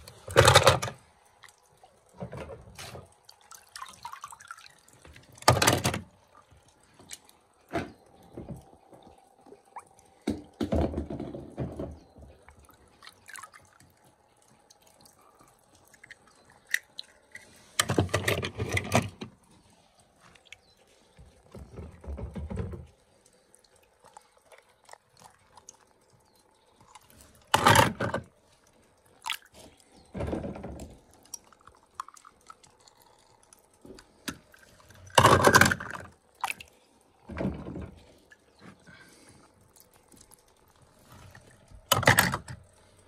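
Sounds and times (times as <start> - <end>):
water splashing in a tub: 0.0 - 43.0.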